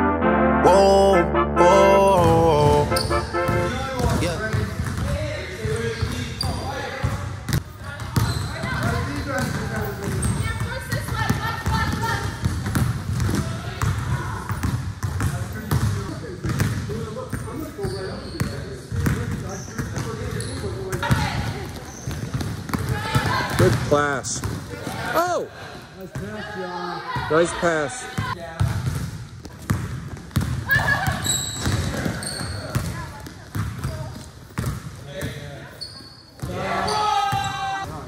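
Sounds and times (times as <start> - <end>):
brass music: 0.0 - 4.2
indistinct voices echoing: 0.0 - 4.2
basketballs bouncing on gym floor: 2.6 - 25.0, 28.1 - 38.0.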